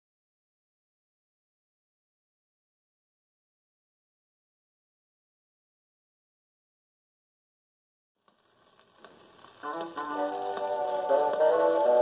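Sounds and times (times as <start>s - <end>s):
record surface noise hiss: 8.2s - 12.0s.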